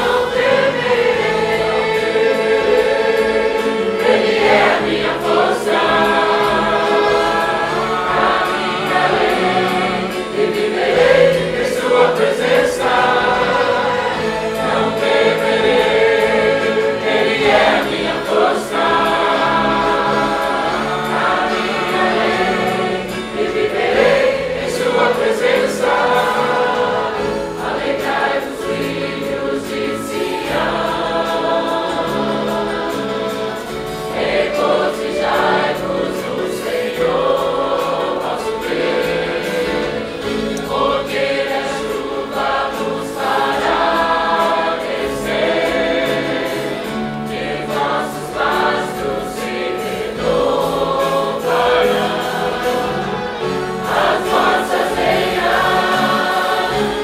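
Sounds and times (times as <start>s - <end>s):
group singing a hymn: 0.0s - 57.0s.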